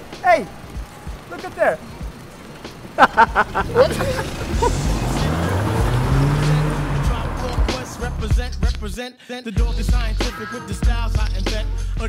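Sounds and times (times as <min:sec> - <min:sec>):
car pulling away over cobblestones: 0:00.0 - 0:09.1
background music with vocals: 0:00.0 - 0:12.0.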